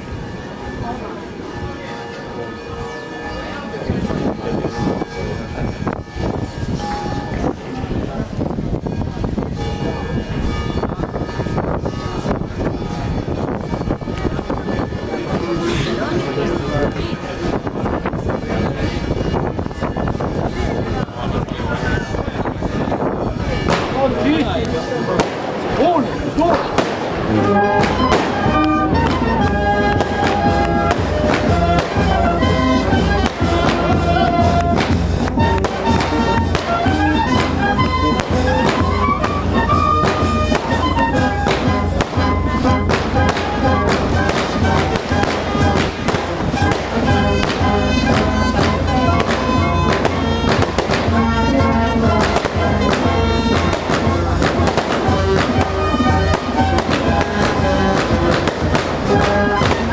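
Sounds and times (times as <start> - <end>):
band playing a melody: 0.0 - 59.9
firecrackers crackling rapidly: 4.1 - 59.9.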